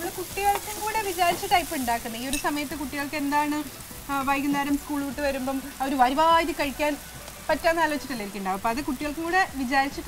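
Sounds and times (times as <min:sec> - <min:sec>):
vegetables sizzling in a pan: 0:00.0 - 0:10.0
woman talking: 0:00.0 - 0:10.0.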